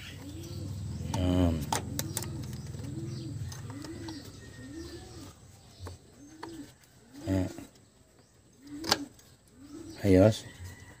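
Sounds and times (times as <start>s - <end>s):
bird cooing: 0.0s - 10.9s.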